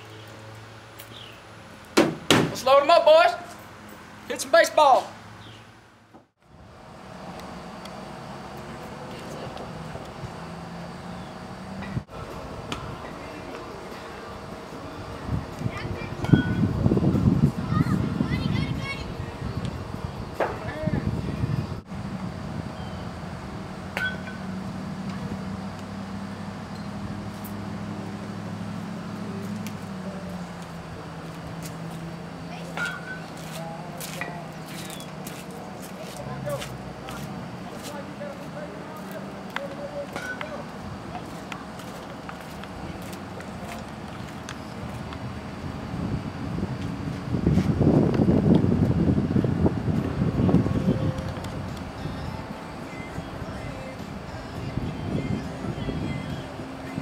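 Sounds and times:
steady low hum: 0:05.2 - 0:57.0
distant indistinct voices: 0:06.9 - 0:47.1, 0:49.5 - 0:57.0.

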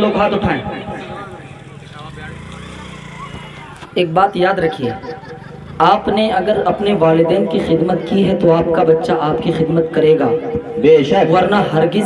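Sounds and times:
faint indistinct voices: 0:00.0 - 0:12.0.

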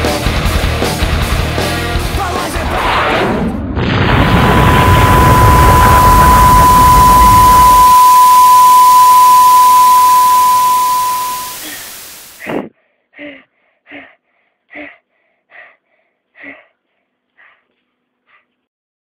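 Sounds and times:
steady high beep: 0:04.6 - 0:12.0
static hiss: 0:06.0 - 0:12.7
gasp-like breath: 0:11.6 - 0:18.5.

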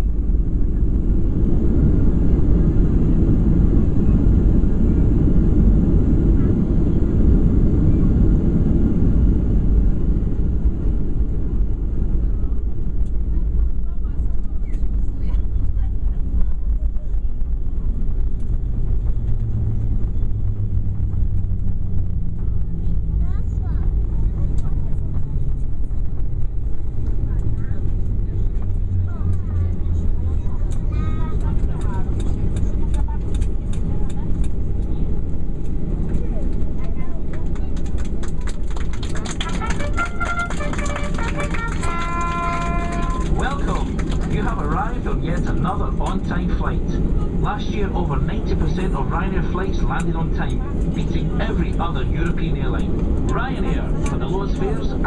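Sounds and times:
airplane engines and wheels rumbling: 0:00.0 - 0:55.0.

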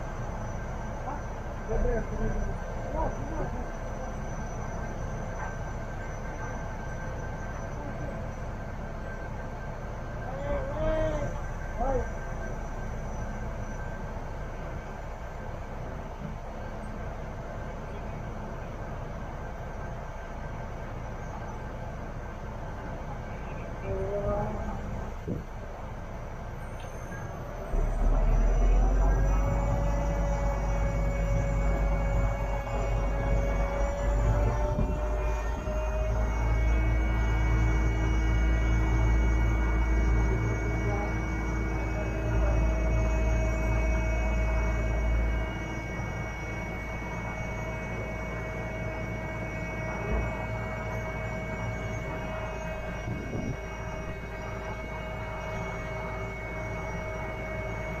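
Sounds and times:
crane engine rumble: 0:00.0 - 0:58.0
hydraulic whining: 0:00.0 - 0:58.0.

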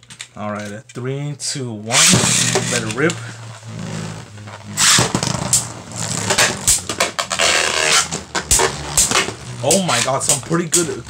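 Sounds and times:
spinning tops whirring: 0:01.9 - 0:11.0.

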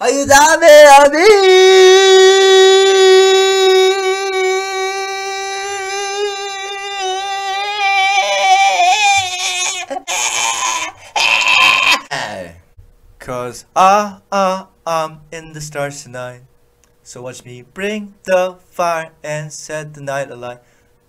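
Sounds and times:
person singing a long note: 0:00.0 - 0:09.0.

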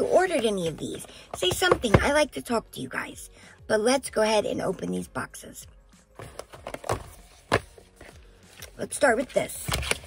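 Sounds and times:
cardboard boxes knocking and rustling: 0:01.4 - 0:02.2, 0:06.2 - 0:08.2.

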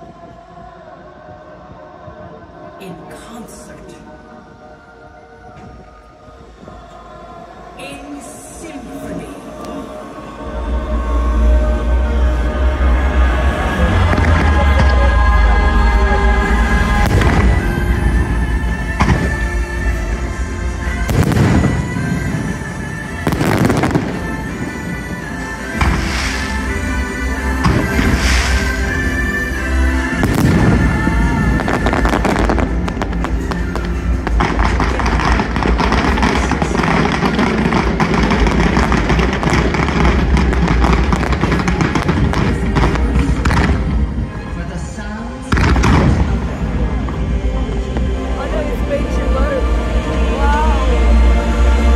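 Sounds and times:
music over loudspeakers: 0:00.0 - 0:51.9
crackle of fireworks: 0:16.8 - 0:18.2, 0:20.9 - 0:29.5, 0:30.1 - 0:44.4, 0:45.4 - 0:46.9.

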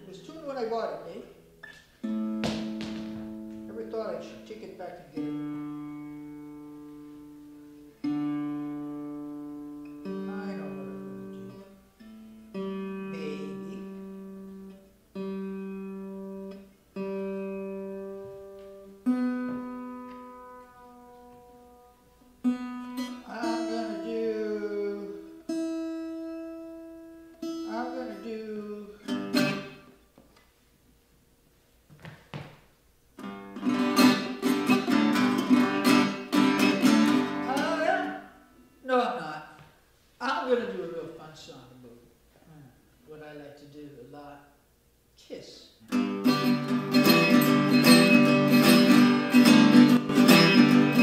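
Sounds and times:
acoustic guitar strings plucked: 0:01.4 - 0:30.0, 0:33.2 - 0:38.7, 0:45.9 - 0:51.0.

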